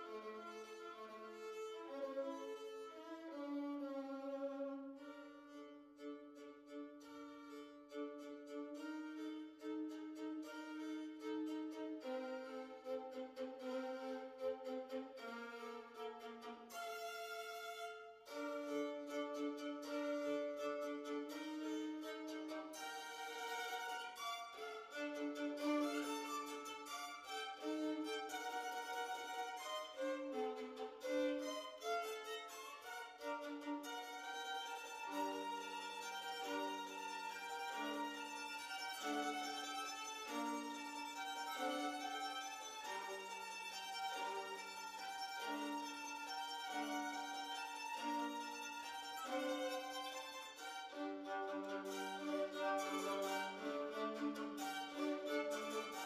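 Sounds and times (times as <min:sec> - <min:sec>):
violin music with long bowed notes: 0:00.0 - 0:56.0.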